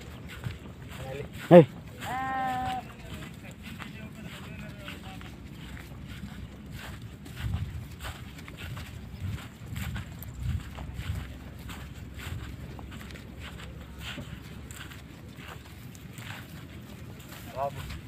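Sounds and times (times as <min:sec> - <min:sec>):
footsteps on grass: 0:00.0 - 0:18.0
low rumbles on microphone: 0:04.8 - 0:15.8.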